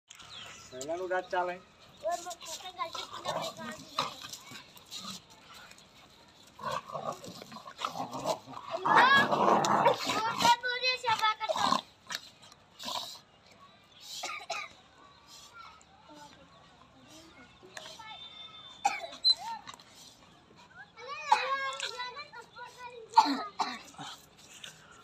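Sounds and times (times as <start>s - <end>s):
dogs growling and snarling: 2.2s - 14.4s, 18.9s - 25.0s.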